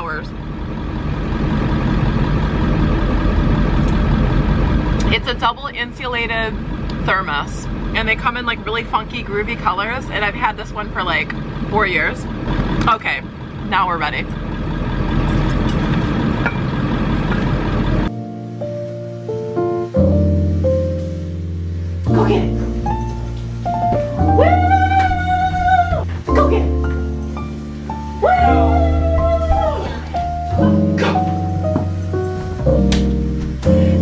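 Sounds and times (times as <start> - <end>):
van engine idling: 0.0 - 34.0
plucked piano-like music: 18.1 - 34.0.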